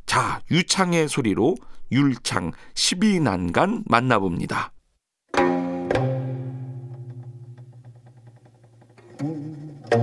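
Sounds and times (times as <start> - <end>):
low plucked string note: 5.4 - 8.5.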